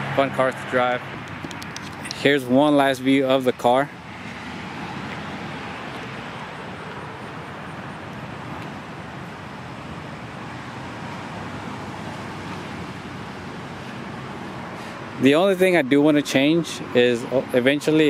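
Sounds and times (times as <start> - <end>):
distant road traffic: 0.0 - 18.0.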